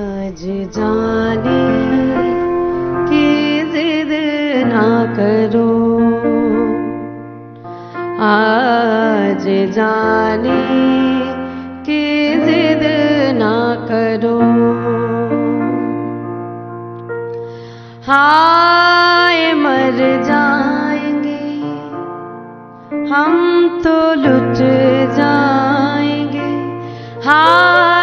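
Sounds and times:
woman singing: 0.0 - 7.0, 8.1 - 16.0, 18.0 - 22.0, 23.0 - 28.0
instrumental accompaniment: 0.0 - 18.1, 21.0 - 28.0
electronic keyboard chords: 24.4 - 28.0.

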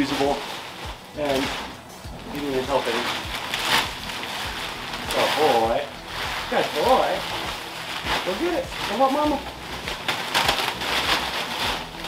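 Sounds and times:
plastic sheeting rustling: 0.0 - 12.0.

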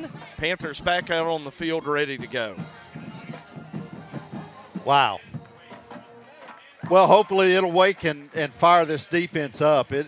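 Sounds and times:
music in a stadium: 0.0 - 10.0.

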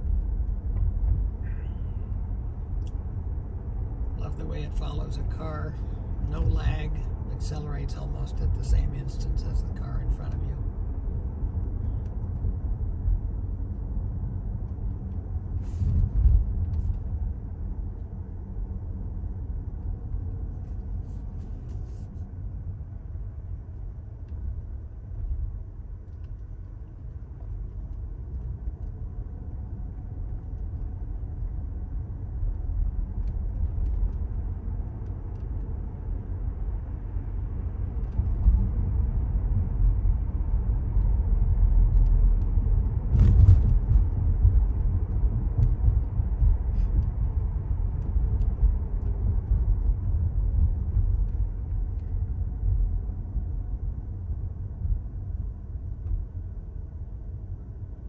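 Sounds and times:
road and tyre rumble: 0.0 - 58.0.

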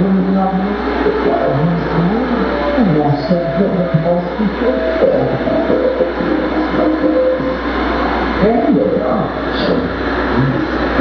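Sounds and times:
low electronic drone: 0.0 - 11.0
warbling gliding electronic tones: 0.0 - 11.0.

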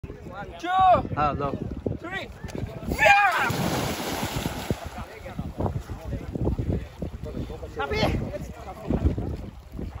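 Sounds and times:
rumbling buffeting on microphone: 1.3 - 10.0
water sloshing and splashing: 3.0 - 6.0.

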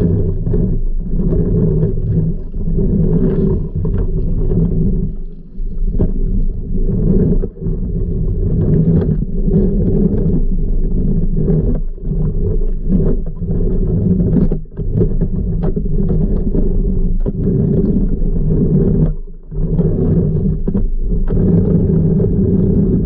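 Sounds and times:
pool vacuum suction underwater: 0.0 - 23.0.

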